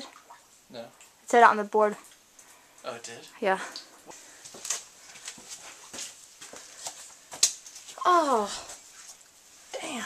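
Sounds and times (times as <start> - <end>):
footsteps on wet walkway: 3.8 - 8.0.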